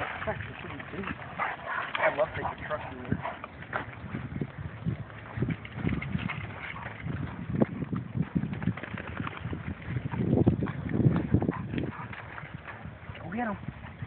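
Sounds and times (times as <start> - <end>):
footsteps on dirt and dry brush: 2.8 - 8.6, 9.5 - 13.0.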